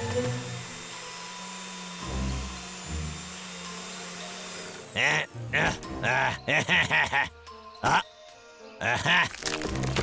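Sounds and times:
cartoon chainsaw cutting wood: 0.0s - 7.2s
background music: 0.0s - 10.0s.

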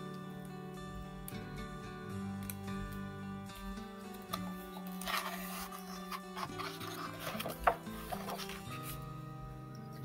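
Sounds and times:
soft background music: 0.0s - 10.0s
paper crackle: 4.8s - 9.0s
book page turning: 4.8s - 9.1s.

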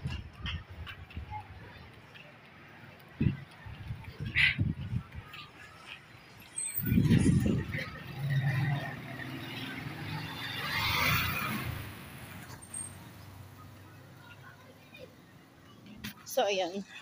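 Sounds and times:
traffic noise: 0.0s - 17.0s.

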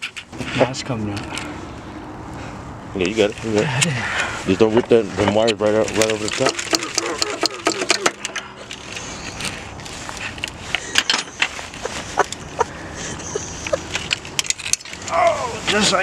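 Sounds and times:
metal clinks and knocks: 5.8s - 12.6s, 13.6s - 15.1s.

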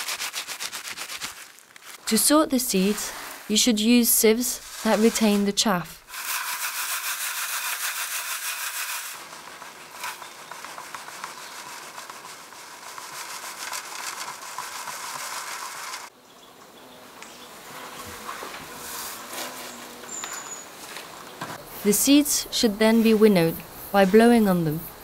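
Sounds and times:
seeds rustling in plastic sieve: 0.0s - 2.1s, 2.7s - 16.1s.

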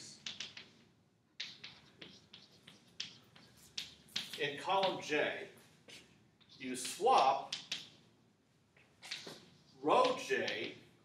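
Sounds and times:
chalk tapping and scraping on blackboard: 0.0s - 5.2s, 5.8s - 8.0s, 8.8s - 10.8s.

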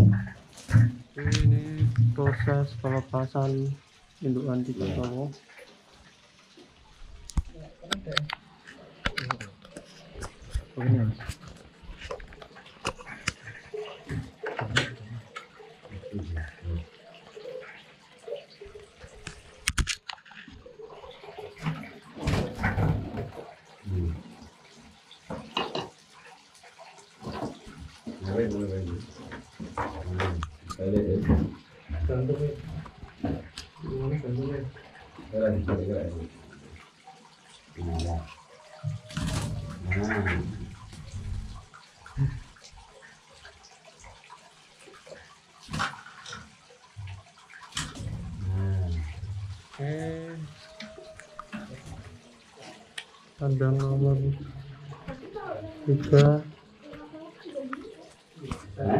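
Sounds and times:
low indistinct speech: 0.0s - 5.4s, 10.8s - 11.4s, 14.6s - 16.9s, 23.9s - 24.2s, 28.2s - 29.1s, 29.9s - 36.4s, 37.8s - 40.7s, 48.2s - 52.0s.

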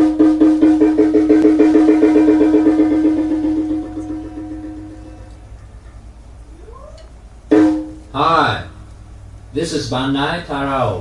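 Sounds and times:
electric guitar picking one note: 1.3s - 5.8s.

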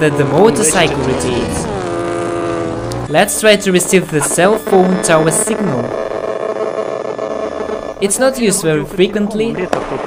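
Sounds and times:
faint steady tones: 0.0s - 10.0s.

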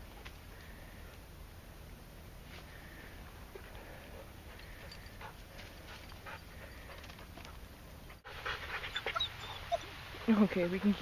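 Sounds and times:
dog panting: 3.6s - 11.0s.

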